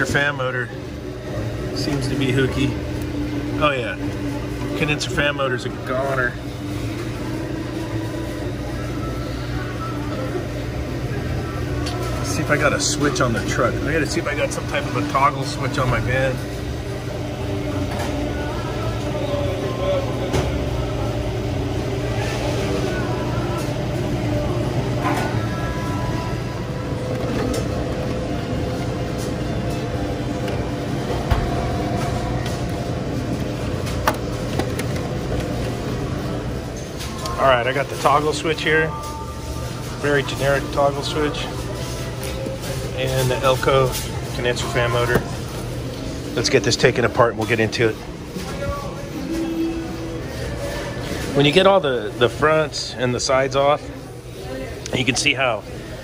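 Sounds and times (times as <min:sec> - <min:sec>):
low mains buzz: 0:00.0 - 0:56.0
mechanical hum and rumble: 0:00.0 - 0:56.0.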